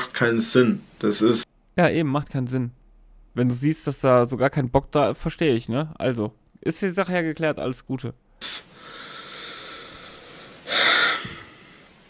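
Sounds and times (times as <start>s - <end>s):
person taking sharp breath: 8.4s - 12.0s.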